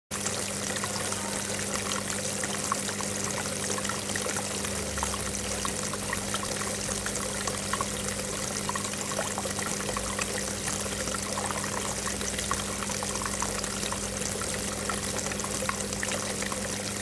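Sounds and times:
fountain water pouring and trickling: 0.1 - 17.0
small water splashes: 0.1 - 17.0.

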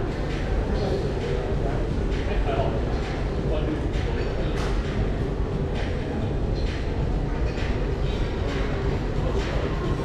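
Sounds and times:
indistinct crowd chatter: 0.0 - 10.0.

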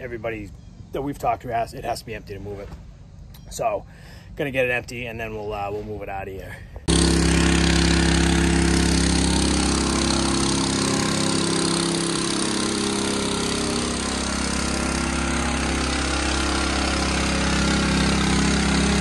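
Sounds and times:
small gasoline engine running: 6.9 - 19.0.

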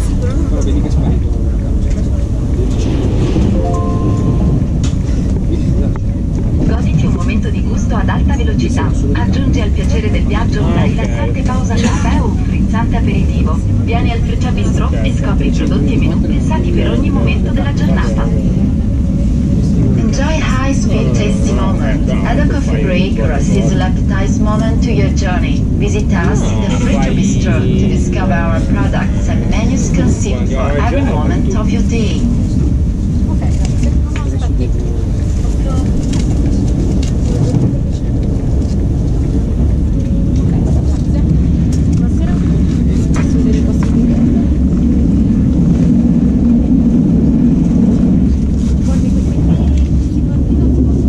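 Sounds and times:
indistinct passengers' voices: 0.0 - 51.0
train rumble inside carriage: 0.0 - 51.0.

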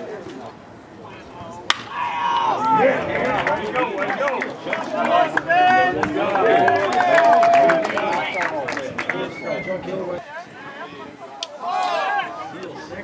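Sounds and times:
bat hitting ball crack: 1.7 - 2.0
crowd shouting and cheering: 1.8 - 13.0.

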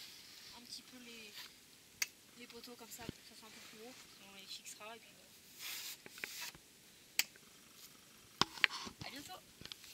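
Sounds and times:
brief rustling: 5.5 - 6.6
sharp clicks: 7.2 - 7.5.

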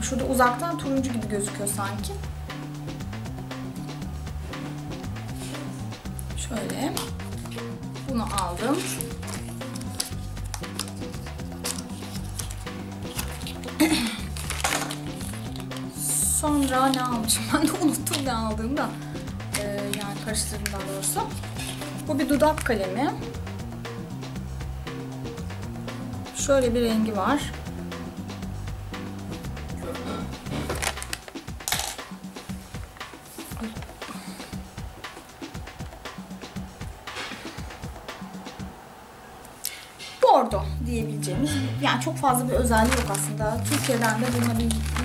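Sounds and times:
background music low notes: 0.0 - 45.0
small hard objects clattering: 8.2 - 22.8, 30.5 - 32.1, 42.6 - 45.0.

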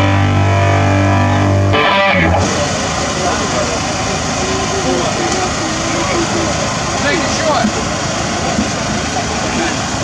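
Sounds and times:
loud noisy rumble: 0.0 - 10.0
people's voices: 2.1 - 10.0.

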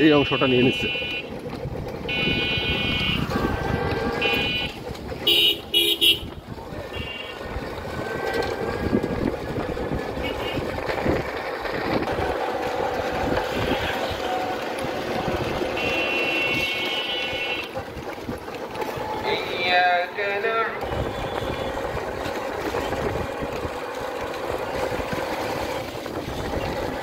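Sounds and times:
rumble of engines and road noise: 0.0 - 27.0
vehicle horns honking: 0.1 - 8.8, 10.1 - 10.9, 13.2 - 14.6, 15.4 - 17.8, 20.7 - 21.8.

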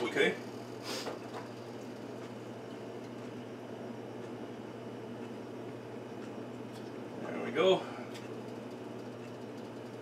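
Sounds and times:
kitchen machinery humming: 0.0 - 10.0.

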